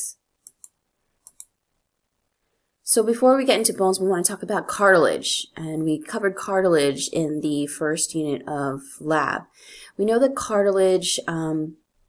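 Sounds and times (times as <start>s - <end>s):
mouse button clicks: 0.4s - 1.5s.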